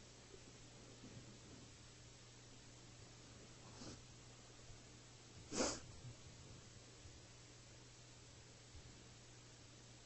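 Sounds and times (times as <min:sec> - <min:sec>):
faint low hum: 0:00.0 - 0:10.0
person sneezing: 0:05.5 - 0:05.9.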